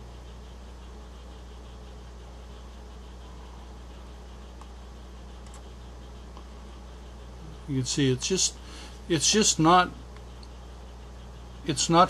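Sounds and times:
low hum: 0.0s - 12.0s
faint clicks: 4.6s - 4.8s, 5.4s - 5.7s.

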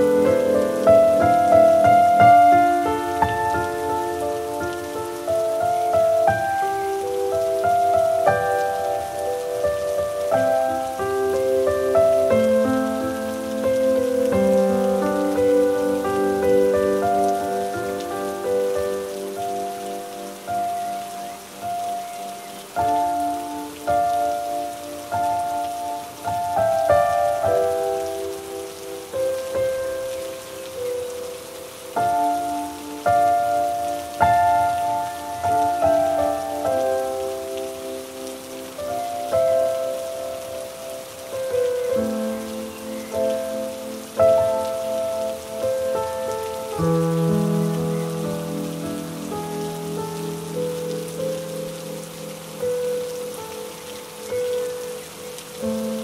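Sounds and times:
slow soft music of held chords: 0.0s - 56.0s
steady rain falling: 0.0s - 56.0s.

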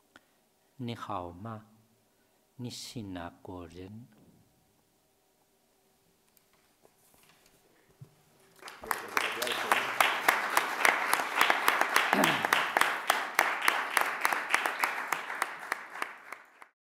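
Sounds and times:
audience applauding: 8.5s - 16.8s.

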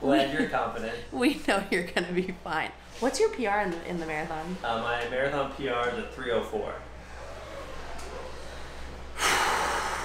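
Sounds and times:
low room hum: 0.0s - 10.0s
sharp breathy exhale: 9.2s - 10.0s.

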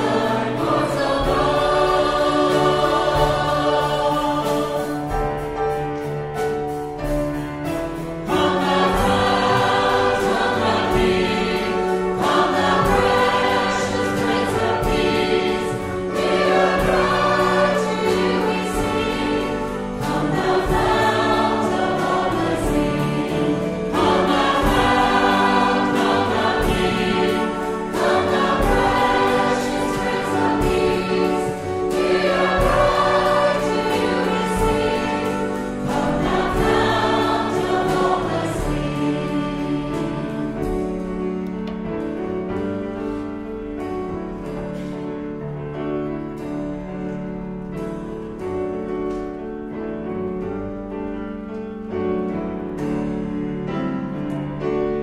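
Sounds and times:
choir singing a hymn: 0.0s - 55.0s
held accompaniment: 0.0s - 55.0s.

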